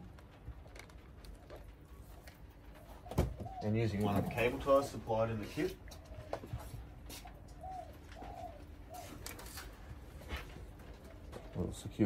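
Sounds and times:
bird cooing: 2.7 - 12.0.

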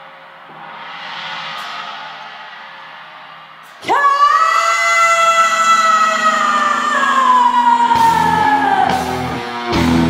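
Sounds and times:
rock song: 5.2 - 10.0.

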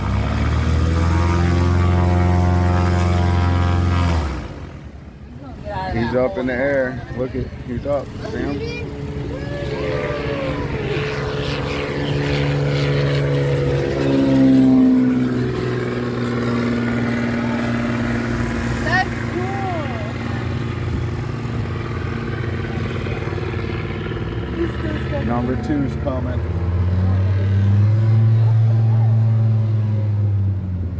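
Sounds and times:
propeller airplane engine: 0.0 - 30.9.

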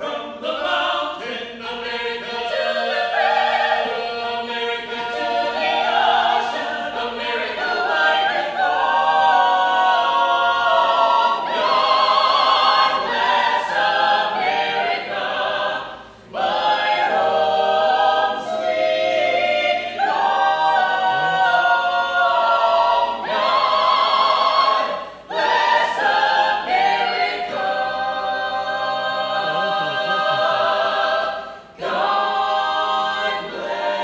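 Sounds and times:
a cappella choir singing: 0.0 - 34.0.

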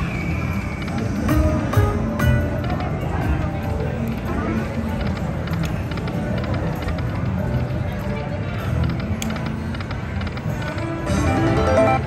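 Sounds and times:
slot machine game music: 11.0 - 12.0.

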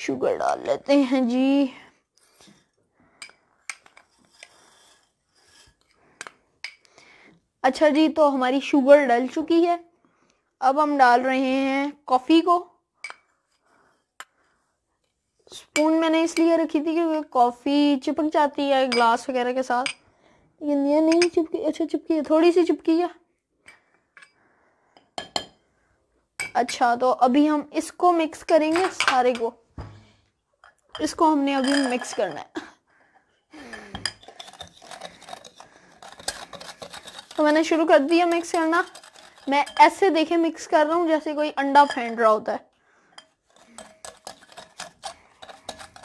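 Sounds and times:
spoon clinking on glass bowls: 25.0 - 25.6, 30.6 - 32.4, 33.7 - 40.3, 43.1 - 46.0.

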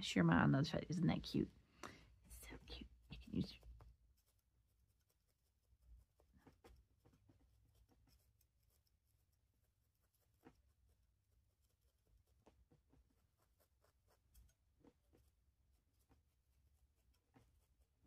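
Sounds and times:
felting needle ticks and scratches: 0.7 - 18.0.

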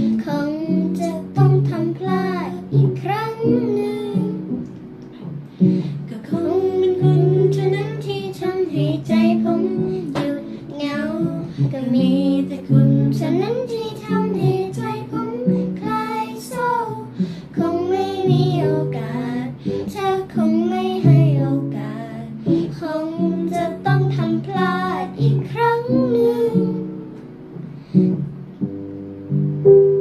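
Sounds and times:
instrumental accompaniment: 0.0 - 30.0
person singing pop song: 5.6 - 26.9.

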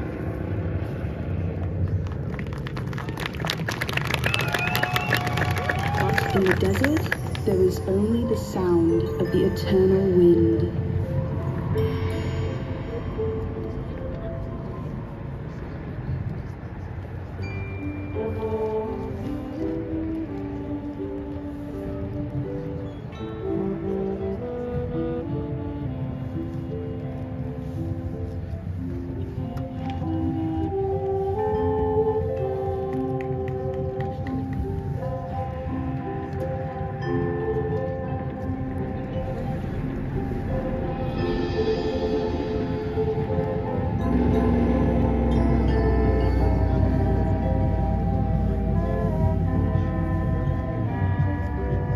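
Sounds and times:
low rumble: 0.0 - 23.0, 37.7 - 51.9
marching band slow melody: 3.1 - 51.9
mallet percussion: 6.2 - 15.1, 34.0 - 48.8.

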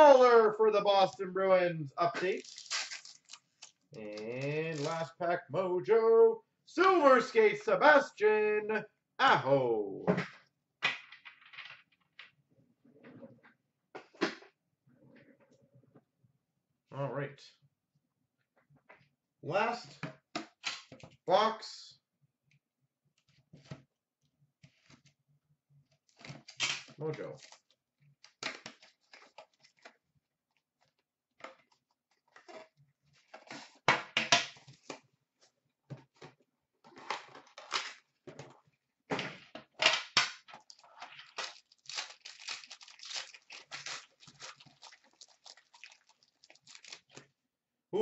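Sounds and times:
foil wrapper crackling: 2.4 - 5.0, 40.6 - 47.2.

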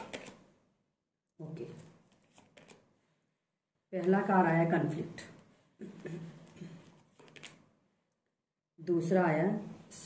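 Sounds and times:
cards clicking and sliding: 0.0 - 0.4, 2.1 - 2.8, 6.8 - 7.6.

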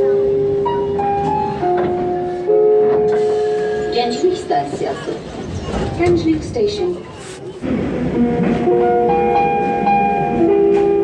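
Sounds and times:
low train rumble: 0.0 - 11.0.

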